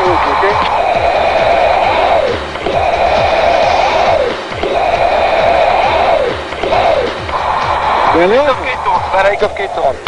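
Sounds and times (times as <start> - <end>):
hissing whoosh: 0.0 - 10.0
jet cockpit roar: 0.0 - 10.0.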